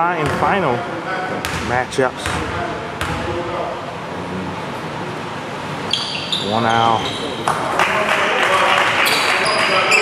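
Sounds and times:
voices echoing: 0.0 - 10.0
sneaker squeaks: 5.8 - 7.6, 9.0 - 10.0.

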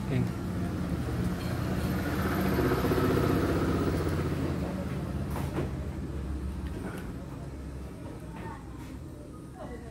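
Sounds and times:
engine rumble: 0.0 - 8.4.

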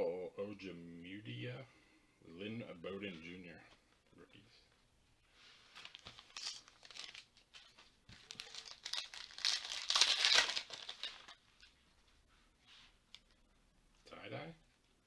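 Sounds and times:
foil wrapper tearing and crinkling: 5.8 - 7.4, 8.2 - 11.4.

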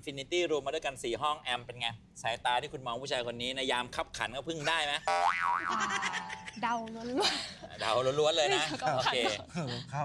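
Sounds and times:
cartoon boing sound effect: 5.1 - 6.0.

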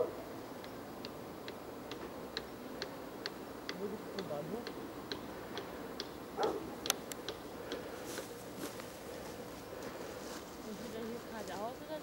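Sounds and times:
regular ticking clicks: 0.6 - 8.3.

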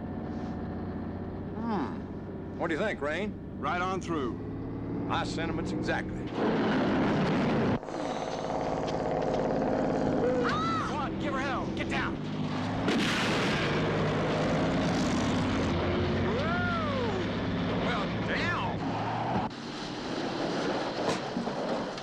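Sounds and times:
diesel truck engine driving past: 0.0 - 21.0
gunshot bang: 12.8 - 13.8.

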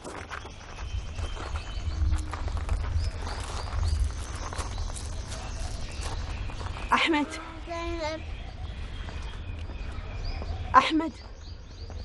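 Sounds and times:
footsteps crunching on gravel: 0.0 - 10.6
steady low rumble: 0.6 - 11.8.

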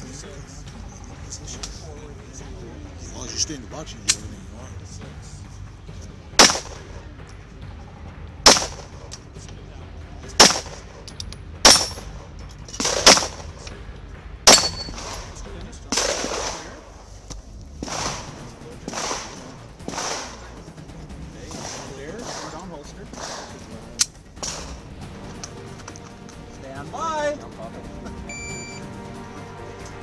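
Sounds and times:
gunshots: 6.4 - 7.1, 8.4 - 9.1, 10.4 - 11.0, 11.6 - 12.2, 12.8 - 13.6, 14.5 - 17.0, 17.8 - 20.7, 21.4 - 24.9.

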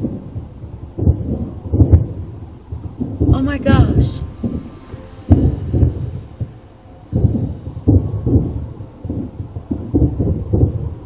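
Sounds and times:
deep low rumbling: 0.0 - 11.0.

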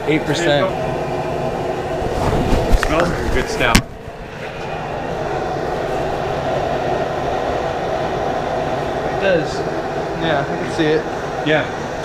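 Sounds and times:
gas burner running: 0.0 - 12.0.

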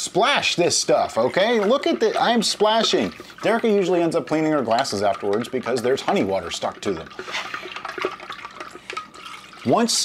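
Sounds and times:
water sloshing in a glass jar: 0.2 - 10.0
plastic spoon stirring: 0.9 - 10.0.

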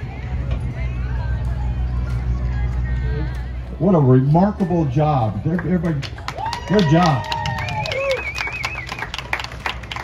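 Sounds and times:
hand clapping: 5.5 - 10.0.

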